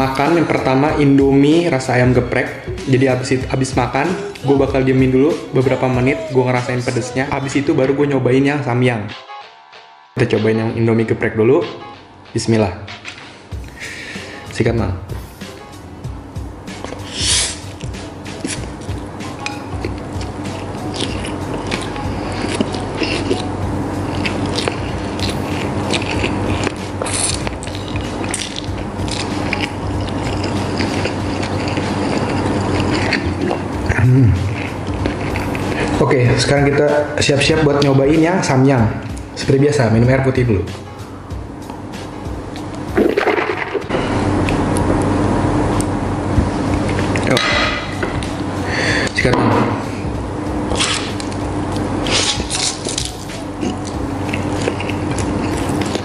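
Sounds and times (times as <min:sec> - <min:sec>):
steady dense noise: 0:00.0 - 0:56.0
person slurping noodles: 0:16.9 - 0:17.8.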